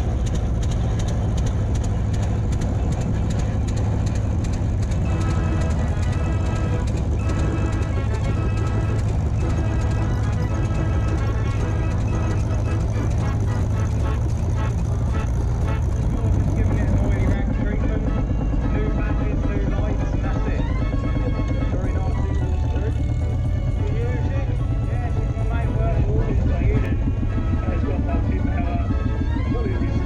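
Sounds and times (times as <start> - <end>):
tractor engines rumbling: 0.0 - 30.0.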